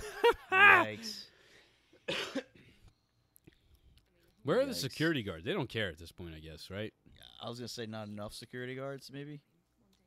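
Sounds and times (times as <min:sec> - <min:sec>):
man coughing: 0:02.0 - 0:02.8.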